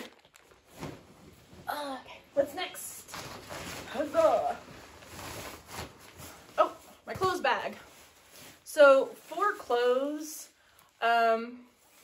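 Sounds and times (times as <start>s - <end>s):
nylon fabric rustling: 0.0s - 12.0s.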